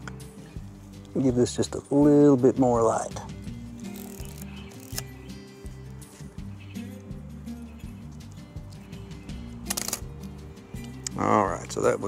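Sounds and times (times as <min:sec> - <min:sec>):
background music with low notes: 0:00.0 - 0:12.0
camera shutter click: 0:09.7 - 0:10.1.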